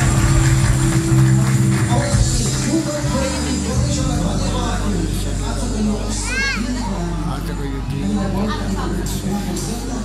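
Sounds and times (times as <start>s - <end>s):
voices in a large hall: 0.0s - 10.0s
worship music: 0.0s - 10.0s
child squealing: 6.2s - 6.9s.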